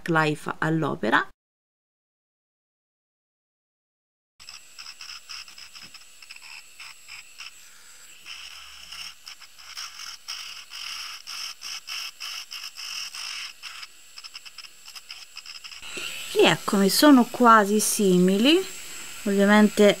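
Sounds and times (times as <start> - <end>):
bit grinding bead: 4.4 - 20.0
rotary tool whine: 4.4 - 20.0.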